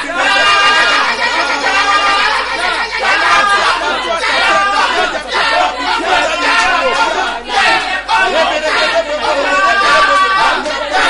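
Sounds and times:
man praying aloud: 0.0 - 11.0.

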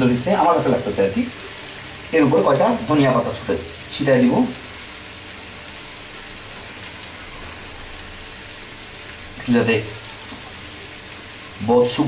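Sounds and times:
fish curry sizzling in oil: 0.0 - 12.0.

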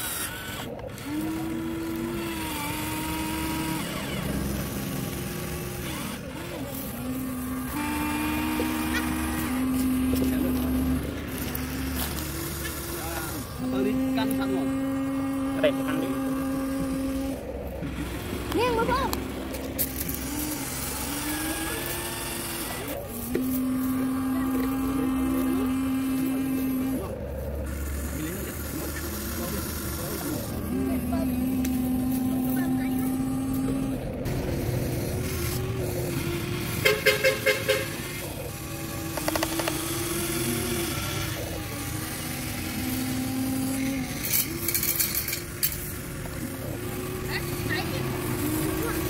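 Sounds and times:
small electric motors whining: 0.0 - 49.0
loud rapid rattle: 34.3 - 49.0.

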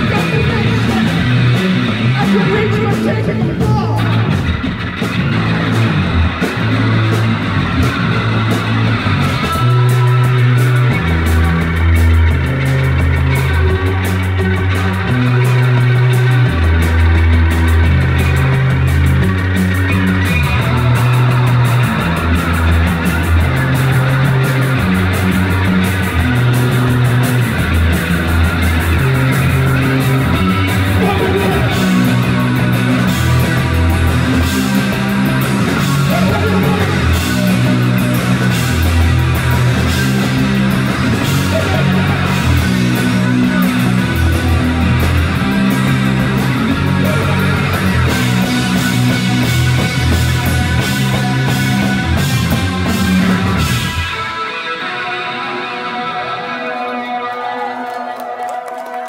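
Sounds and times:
drums with cymbal hits: 0.0 - 54.2
bass guitar riff: 0.0 - 57.3
electric guitar: 0.0 - 59.0.

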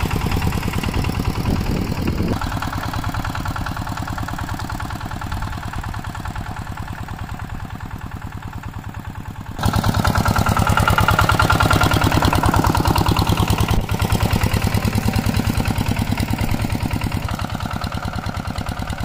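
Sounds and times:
diesel engine thudding: 0.0 - 19.0.

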